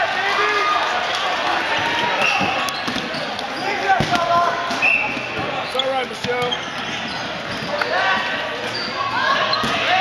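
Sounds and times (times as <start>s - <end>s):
players shouting: 0.0s - 10.0s
balls bouncing on wooden floor: 4.0s - 7.9s.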